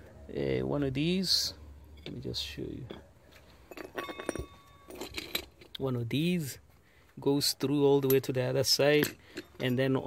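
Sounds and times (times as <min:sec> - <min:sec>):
metal tools clinking: 0:01.9 - 0:05.9, 0:07.8 - 0:10.0
struck metal ringing: 0:03.7 - 0:05.2.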